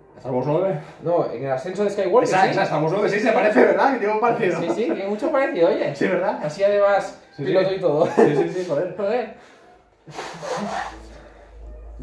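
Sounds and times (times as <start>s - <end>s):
man blowing his nose: 10.1s - 11.3s.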